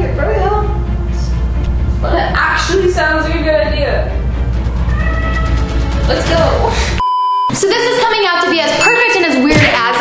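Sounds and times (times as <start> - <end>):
people talking: 2.0 - 4.2, 6.1 - 6.9, 7.5 - 10.0
censor bleep: 7.0 - 7.6.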